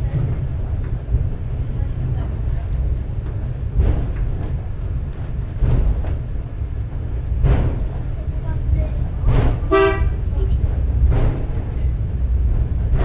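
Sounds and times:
cable car rumbling on rails: 0:00.0 - 0:13.0.

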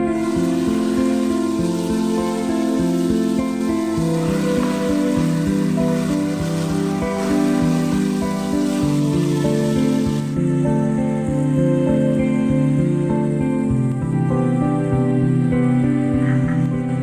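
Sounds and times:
chicken sizzling in a pot: 0:00.0 - 0:10.4
instrumental background music: 0:00.0 - 0:17.0.

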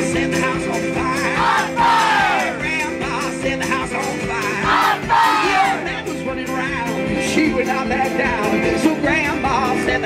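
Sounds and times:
acoustic guitar: 0:00.0 - 0:10.0
audience yelling and whooping: 0:01.4 - 0:02.6, 0:04.7 - 0:05.9.

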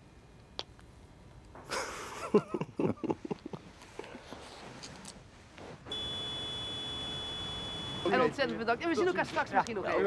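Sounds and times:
high-pitched beep tone: 0:05.9 - 0:08.3.

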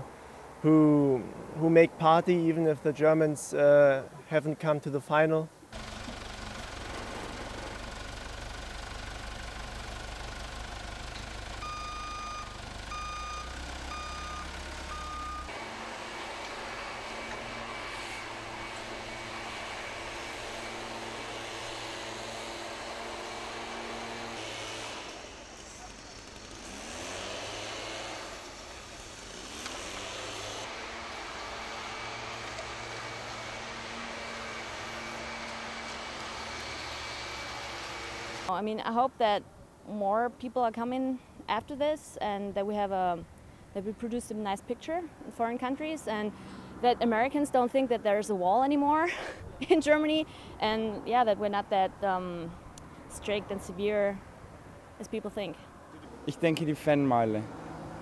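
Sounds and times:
street noise: 0:05.5 - 0:58.0
truck engine running: 0:05.8 - 0:38.5
reversing alarm beeping: 0:11.6 - 0:15.5.

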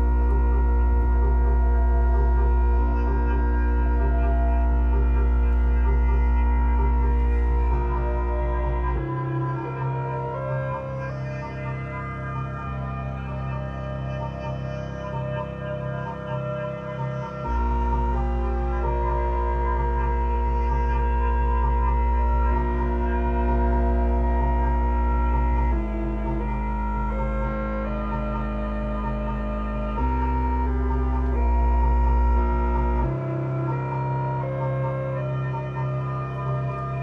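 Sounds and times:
deep synth bass note: 0:00.0 - 0:11.3
sustained electronic synthesizer tones: 0:00.0 - 0:37.0.

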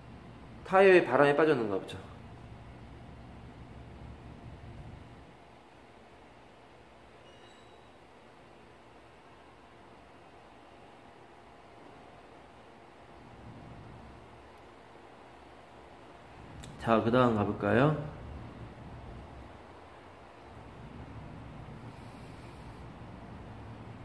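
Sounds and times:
low hum with light hiss: 0:00.0 - 0:24.0.

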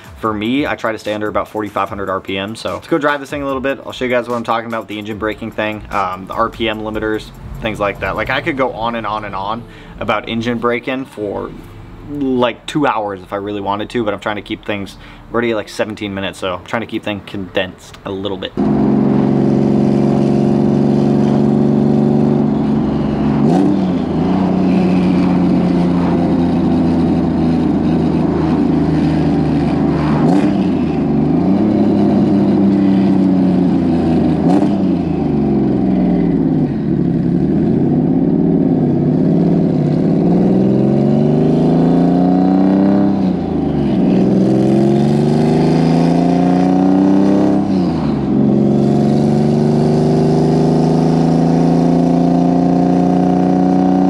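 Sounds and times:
car engine revving: 0:00.0 - 0:15.6, 0:18.4 - 0:54.0.

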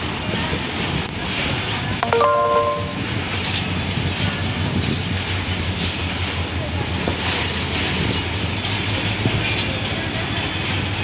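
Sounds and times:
train coaches rumbling on rails: 0:00.0 - 0:11.0.

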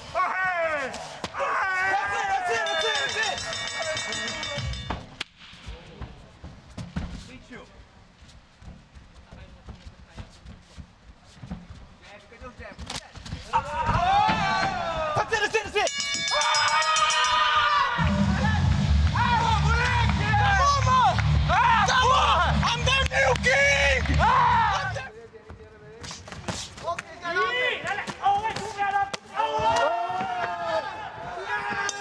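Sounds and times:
crowd shouting: 0:00.0 - 0:04.8, 0:13.6 - 0:25.0, 0:27.5 - 0:32.0
footwork on canvas: 0:05.5 - 0:15.8, 0:25.4 - 0:27.2.

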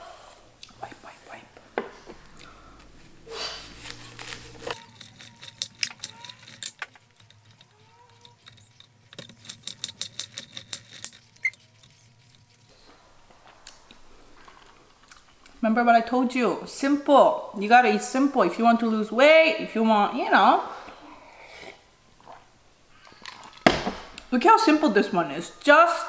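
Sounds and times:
pieces clicking on a plate: 0:04.7 - 0:11.4.

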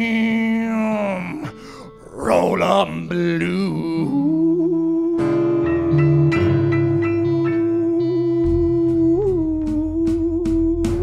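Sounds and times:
blues band playing: 0:05.2 - 0:11.0.

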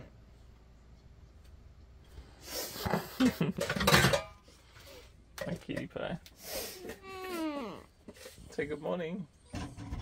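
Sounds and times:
person laughing in giggles: 0:03.0 - 0:03.7.

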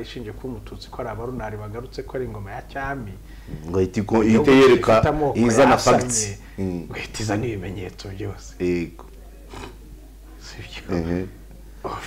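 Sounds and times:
men talking softly: 0:00.0 - 0:12.0
steady low hum: 0:00.0 - 0:12.0.

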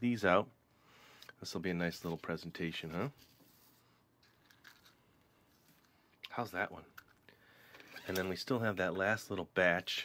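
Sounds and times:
rustles and scrapes of bread: 0:01.8 - 0:05.9.

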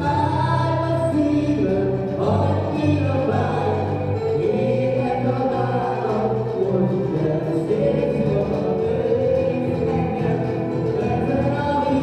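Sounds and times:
band playing: 0:00.0 - 0:12.0
steady bass line: 0:00.0 - 0:12.0
voices singing together: 0:00.0 - 0:12.0.

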